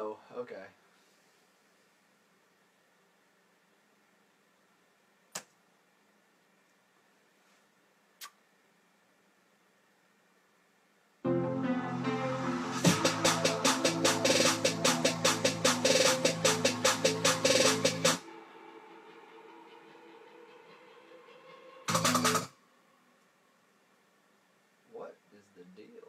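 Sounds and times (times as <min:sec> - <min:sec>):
sustained synth chords: 0:11.2 - 0:23.0.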